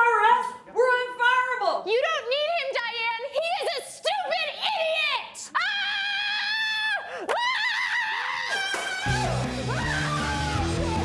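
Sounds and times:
woman screaming: 4.8s - 11.0s.

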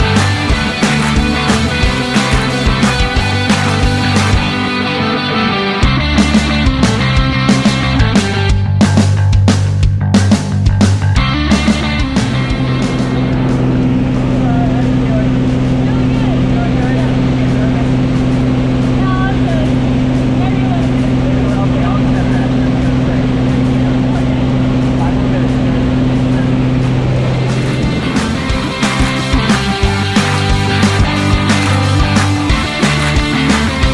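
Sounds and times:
rock music: 0.0s - 33.9s
plane engine and propeller drone: 11.3s - 33.9s
faint voices: 13.1s - 33.9s.

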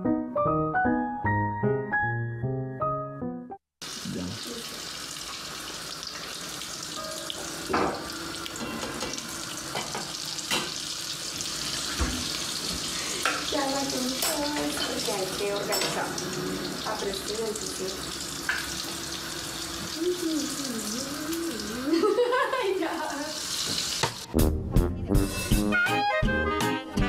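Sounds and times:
piano music: 0.0s - 3.6s, 6.9s - 10.4s, 13.5s - 21.9s
food deep-frying in oil: 3.8s - 22.0s, 23.0s - 24.3s.

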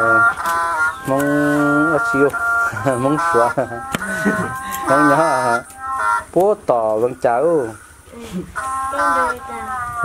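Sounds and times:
man's drawn-out syllables: 0.0s - 7.9s
faint steady high tone: 7.1s - 10.0s.

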